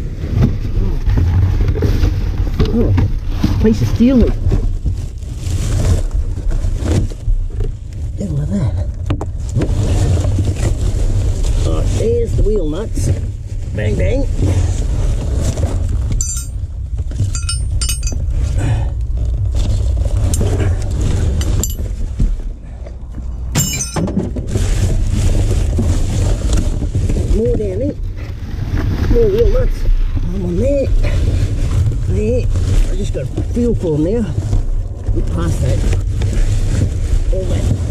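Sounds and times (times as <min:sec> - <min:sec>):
steady low rumble: 0:00.0 - 0:37.9
plastic and paper rustling: 0:00.1 - 0:08.2, 0:18.4 - 0:23.5, 0:24.2 - 0:37.9
sharp metal clinks: 0:16.2 - 0:16.6, 0:17.3 - 0:18.2, 0:21.5 - 0:21.8, 0:23.6 - 0:24.1.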